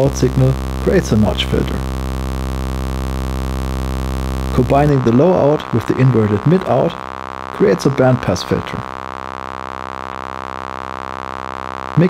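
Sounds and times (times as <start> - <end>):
low synthesizer drone: 0.0 - 12.0.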